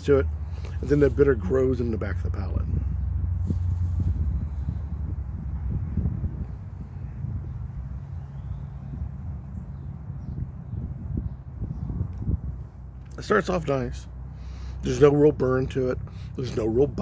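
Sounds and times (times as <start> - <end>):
wind rumbling on microphone: 0.0 - 13.2.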